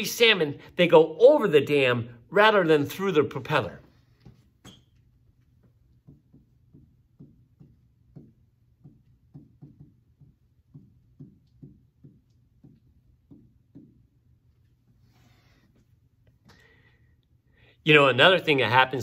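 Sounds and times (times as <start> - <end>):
stylus tapping on glass: 5.9 - 14.2.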